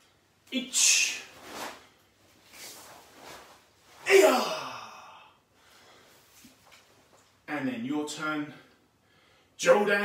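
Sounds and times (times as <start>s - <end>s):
soft movement noises: 0.1s - 4.4s, 5.6s - 7.6s.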